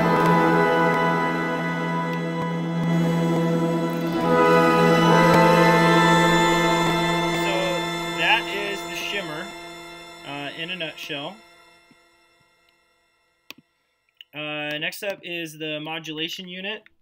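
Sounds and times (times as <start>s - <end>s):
guitar chord with shimmer reverb: 0.0s - 12.4s.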